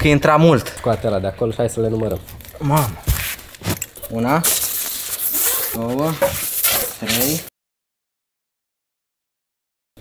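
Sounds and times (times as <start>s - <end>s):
cardboard sheets scraping: 3.0s - 7.5s.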